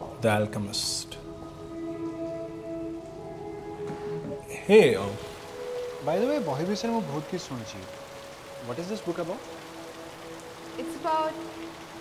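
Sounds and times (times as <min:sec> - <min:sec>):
soft sustained music: 0:00.0 - 0:12.0
steady rain falling: 0:00.0 - 0:12.0.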